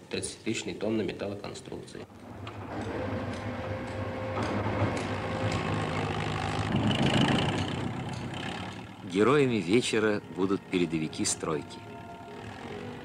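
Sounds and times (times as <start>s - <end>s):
heavy engine humming: 2.1s - 13.0s.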